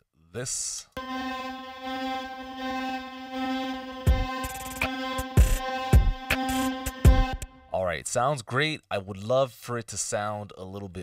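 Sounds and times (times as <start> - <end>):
synthesizer holding buzzy note: 1.0 - 7.8.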